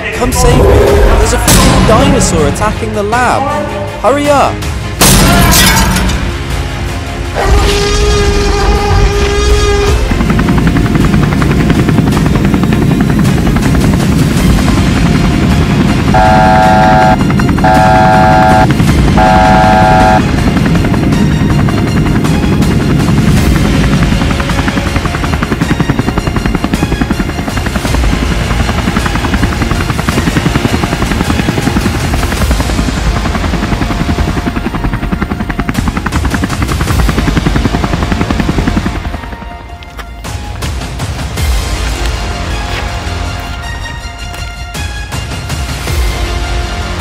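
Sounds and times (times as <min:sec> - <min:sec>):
background music: 0:00.0 - 0:47.0
helicopter rotor chopping: 0:09.0 - 0:43.4
warning alarm beeps: 0:16.2 - 0:20.2.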